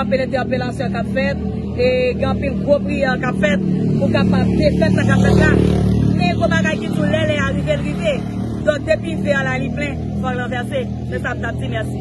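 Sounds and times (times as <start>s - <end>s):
motor vehicle passing: 0.0s - 12.0s
road traffic rumble: 0.0s - 12.0s.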